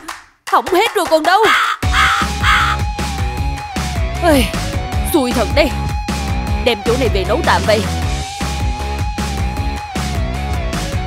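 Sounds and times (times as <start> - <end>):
cartoon crow cawing: 1.4 - 2.9
background music with low beat: 1.9 - 11.0.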